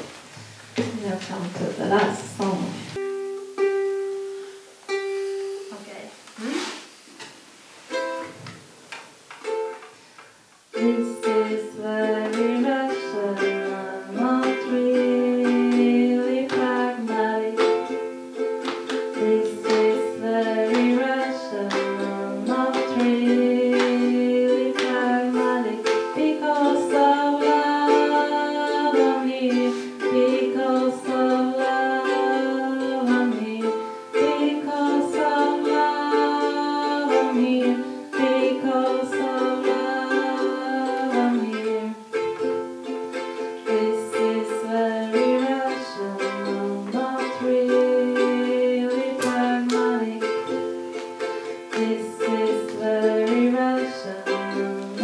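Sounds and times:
plucked string instrument: 1.9 - 5.8, 7.9 - 55.0
woman singing long notes: 10.7 - 42.2, 43.4 - 55.0.

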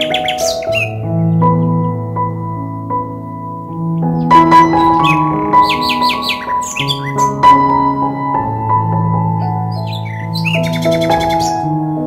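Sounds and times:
bird chirps trilling: 0.0 - 2.2, 3.7 - 8.6, 9.3 - 11.7
soft piano music: 0.0 - 12.0.

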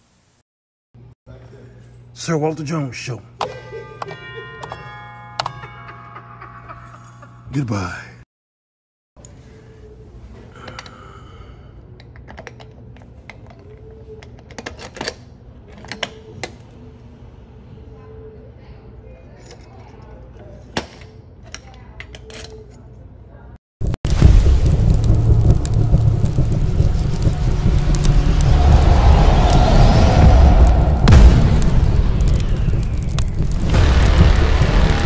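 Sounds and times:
deep cinematic rumble: 23.8 - 35.0
fire crackles: 23.8 - 35.0
rising tone: 23.8 - 35.0.

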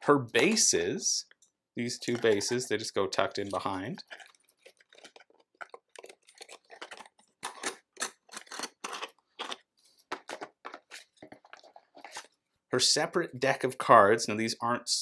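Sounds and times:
plastic pieces clicking and scraping: 2.0 - 2.8, 3.4 - 12.3.

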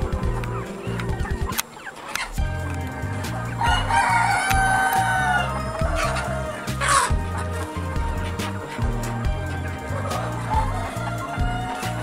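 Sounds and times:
background music: 0.0 - 12.0
chickens calling: 0.0 - 12.0
rooster crowing: 3.6 - 7.1.

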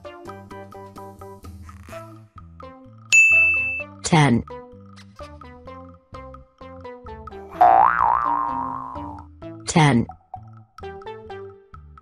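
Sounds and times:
cartoon boing sound effect: 7.5 - 9.2
children's music with plucked notes: 7.6 - 9.2.

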